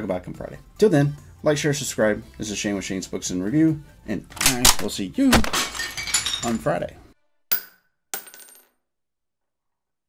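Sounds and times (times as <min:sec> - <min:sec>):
glass shattering: 0:05.3 - 0:06.8.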